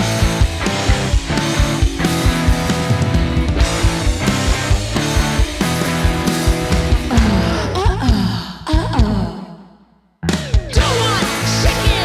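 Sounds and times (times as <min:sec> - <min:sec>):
sliding pitch notes: 0:00.0 - 0:07.9
grunge rock band: 0:00.0 - 0:08.3, 0:10.2 - 0:12.0
drum hits: 0:00.1 - 0:08.1.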